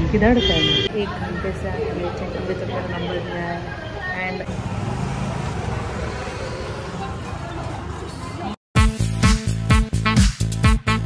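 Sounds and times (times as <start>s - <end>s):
traffic rumble: 0.0s - 8.6s.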